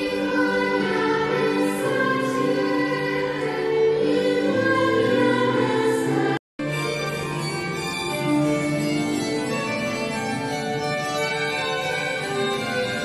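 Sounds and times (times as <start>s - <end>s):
young choir singing: 0.0s - 6.4s
violins playing: 0.0s - 13.0s.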